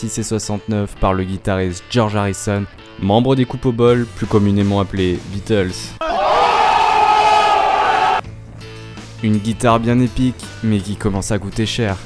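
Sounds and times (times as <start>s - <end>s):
person's loud high-pitched cry: 6.0s - 7.4s.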